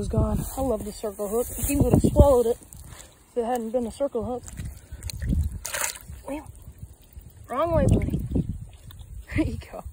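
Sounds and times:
water splash: 4.4 - 9.1.

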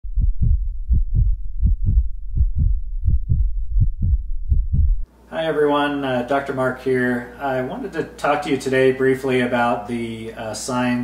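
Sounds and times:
heartbeat thuds: 0.0 - 5.1.

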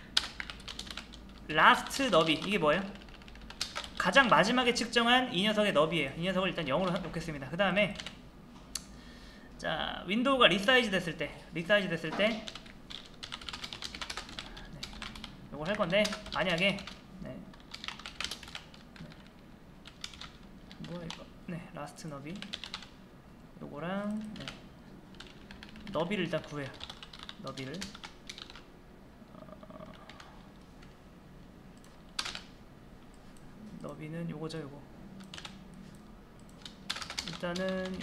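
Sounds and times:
keyboard typing: 0.2 - 4.6, 6.7 - 7.2, 7.9 - 8.2, 12.1 - 21.3, 22.3 - 22.9, 24.0 - 28.7, 29.7 - 31.0, 31.8 - 32.5, 35.2 - 38.0.

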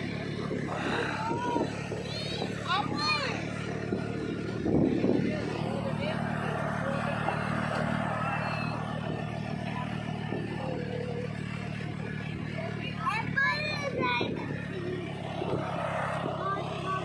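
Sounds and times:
tractor engine humming: 0.0 - 17.0.

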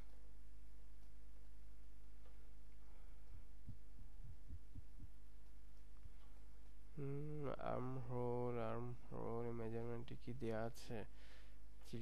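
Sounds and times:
low electrical hum: 0.0 - 12.0
soft low thumps: 3.2 - 5.4.

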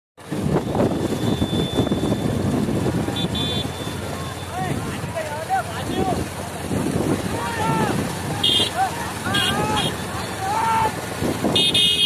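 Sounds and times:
motorcycle engines running: 0.2 - 12.0
voices calling out: 1.0 - 12.0.

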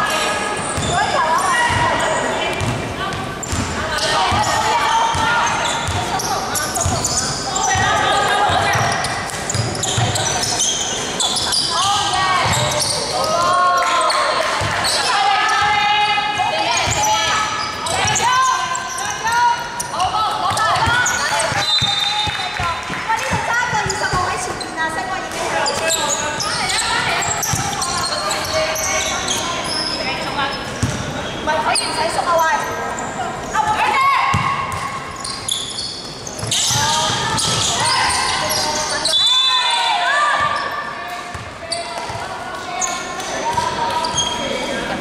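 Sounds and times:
players calling and shouting: 0.0 - 45.0.

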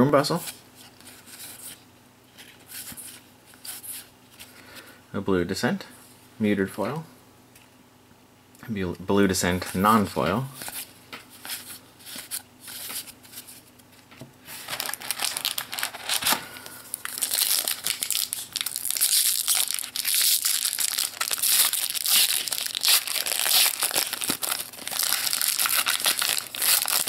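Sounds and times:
foil wrapper crinkling: 14.5 - 27.0.

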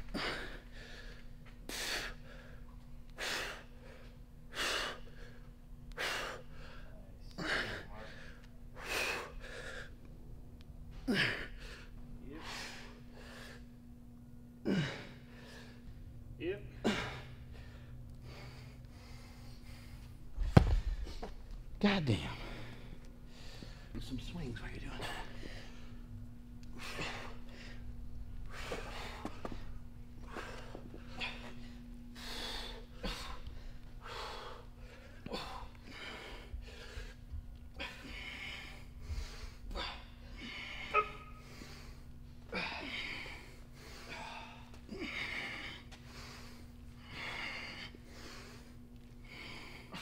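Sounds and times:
man breathing hard: 0.0 - 10.0, 11.0 - 13.8, 14.6 - 16.0, 16.6 - 21.4, 22.2 - 24.0, 24.9 - 50.0
steady low hum: 0.0 - 50.0.

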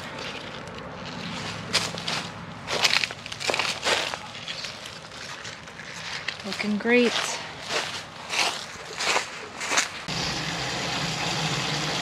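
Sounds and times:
plants and soil crunching and rustling: 0.0 - 10.1.

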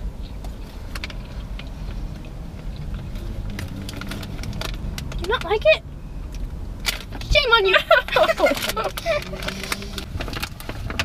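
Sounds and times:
low rumble inside a car: 0.0 - 11.0
hard candy being chewed: 0.3 - 5.3.

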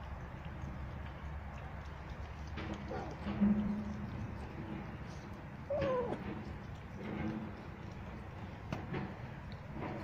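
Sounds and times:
cats chewing clicks: 0.0 - 10.0
cat low drawn-out call: 5.6 - 6.3.

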